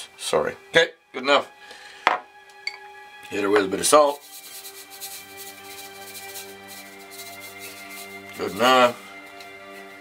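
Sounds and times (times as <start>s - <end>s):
background music with held notes: 0.0s - 10.0s
salt grains hissing from shaker: 4.0s - 10.0s.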